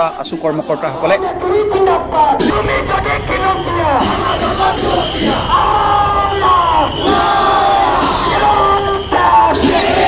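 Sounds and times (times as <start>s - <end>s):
crowd shouting slogans in unison: 0.8s - 10.0s.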